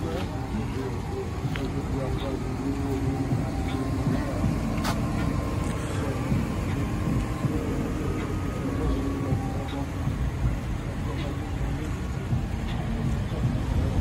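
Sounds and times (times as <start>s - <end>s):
cars rumbling on street: 0.0s - 14.0s
indistinct voices talking: 0.0s - 14.0s.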